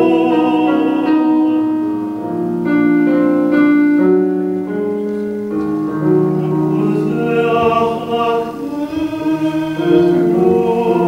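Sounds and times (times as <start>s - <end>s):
electric keyboard sustained chords: 0.0s - 11.0s.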